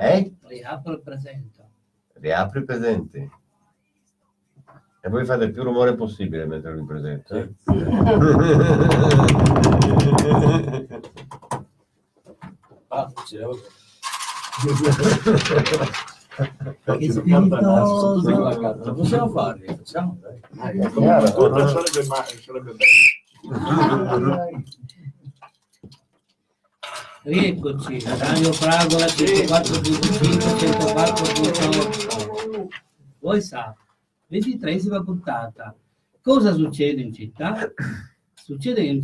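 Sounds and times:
sharp claps: 0:08.8 - 0:11.5
indistinct voices talking: 0:27.9 - 0:32.8
people shouting and whooping: 0:30.0 - 0:32.8.

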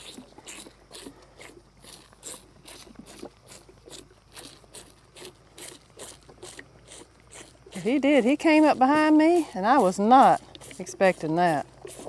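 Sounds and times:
cow chewing feed: 0:00.0 - 0:12.0.

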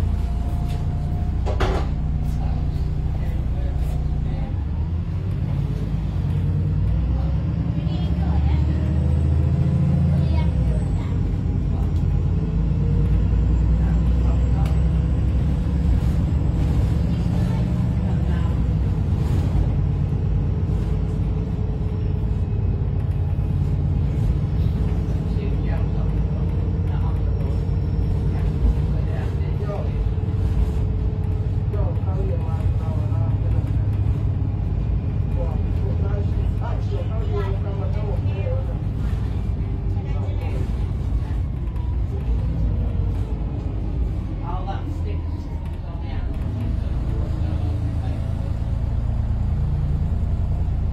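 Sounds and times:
bus engine rumbling: 0:00.0 - 0:50.9
faint voices: 0:01.9 - 0:50.9.

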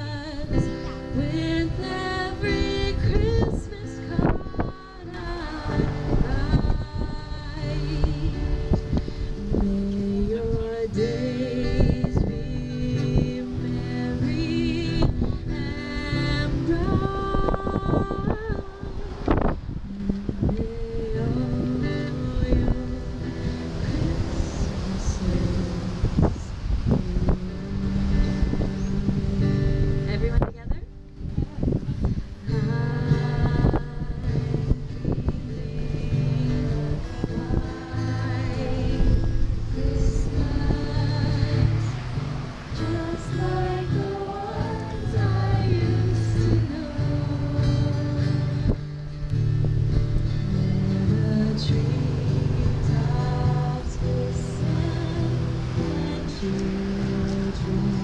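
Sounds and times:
strummed acoustic guitar: 0:00.0 - 0:58.0
woman singing a slow song: 0:00.0 - 0:58.0.

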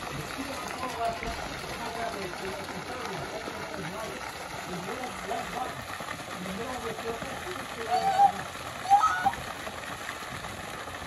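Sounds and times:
fountain water spray hissing: 0:00.0 - 0:11.0.

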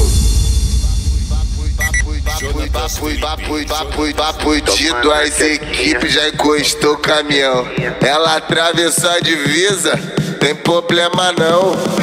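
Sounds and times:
voice over music: 0:00.0 - 0:08.5
funk dance music with deep bass: 0:01.8 - 0:12.0.

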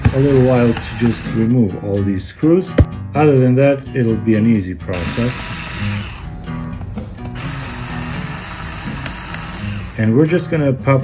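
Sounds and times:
electric screwdriver running: 0:00.0 - 0:01.5, 0:05.0 - 0:06.4, 0:07.2 - 0:10.1.

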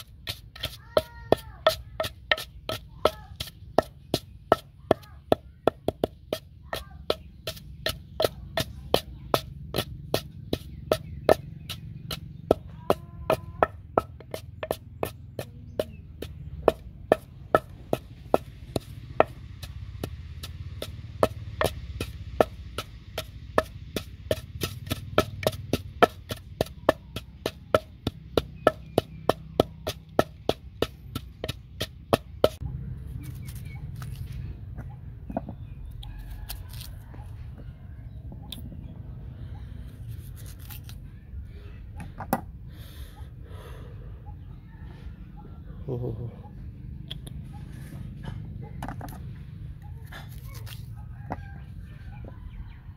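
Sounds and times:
wooden pestle pounding in mortar: 0:00.0 - 0:32.6.

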